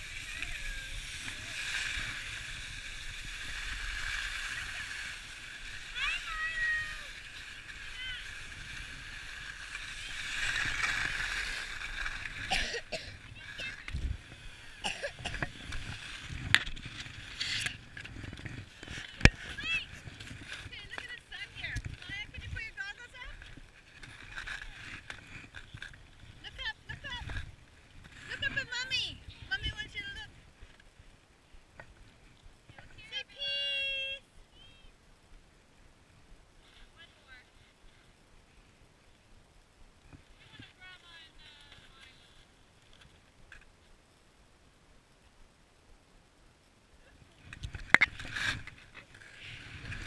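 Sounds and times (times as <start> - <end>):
child speaking: 5.9 - 7.2
child's high held call: 5.9 - 7.2.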